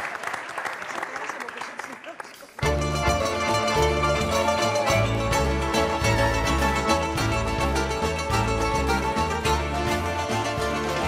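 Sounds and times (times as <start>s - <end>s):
plucked strings: 2.6s - 11.0s
repeating bass line: 2.6s - 11.0s.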